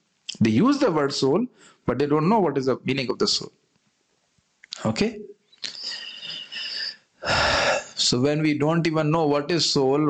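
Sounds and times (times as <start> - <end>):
man speaking: 0.3 - 3.5, 4.7 - 10.0
man breathing in: 5.6 - 8.0.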